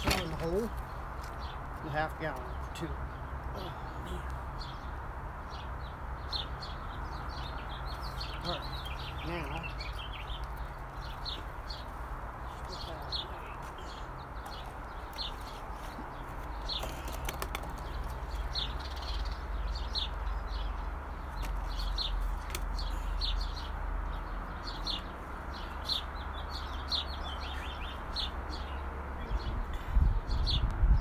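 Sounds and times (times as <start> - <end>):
small bird chirping: 6.2 - 30.7.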